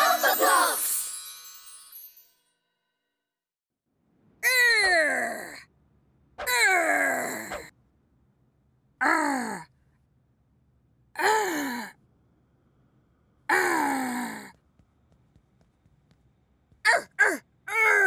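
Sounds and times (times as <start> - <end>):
cartoon voice growling: 6.4 - 7.7.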